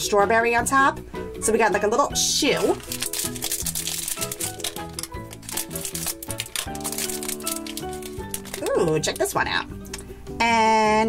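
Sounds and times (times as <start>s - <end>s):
background music: 0.0s - 11.0s
foil bag crinkling and tearing: 2.4s - 9.6s.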